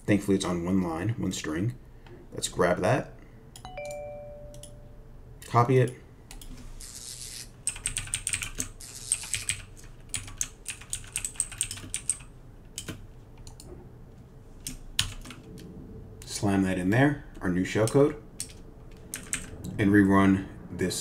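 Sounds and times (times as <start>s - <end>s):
computer keyboard typing: 6.3s - 13.7s, 14.6s - 15.6s, 17.8s - 19.6s.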